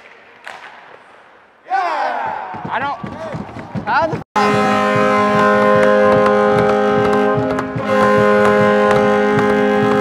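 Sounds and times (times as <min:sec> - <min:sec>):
arena goal horn: 0:04.4 - 0:10.0.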